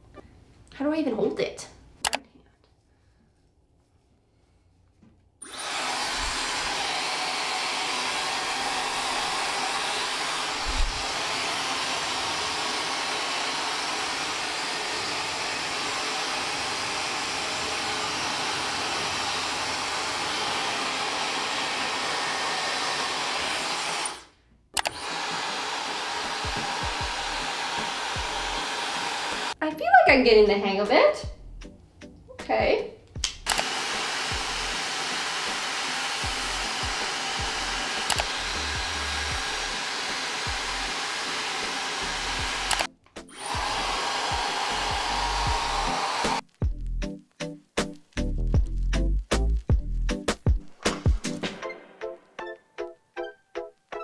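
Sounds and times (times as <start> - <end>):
hair dryer blowing: 5.4 - 29.6, 33.5 - 46.4.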